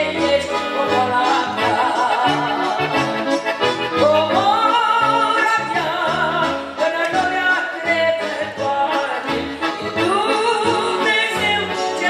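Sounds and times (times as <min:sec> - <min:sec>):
woman singing a hymn: 0:00.0 - 0:03.0, 0:04.0 - 0:12.0
electronic keyboard chords: 0:00.0 - 0:12.0.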